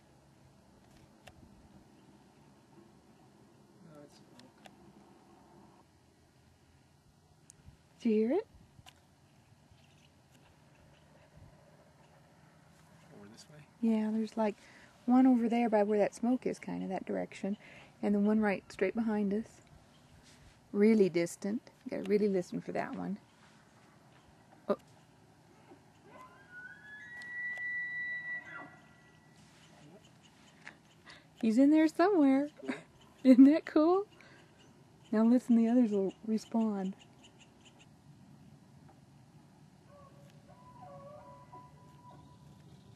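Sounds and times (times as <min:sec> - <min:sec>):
background hiss: 0:00.0 - 0:41.1
distant elk bugle: 0:26.0 - 0:30.2, 0:39.9 - 0:42.4.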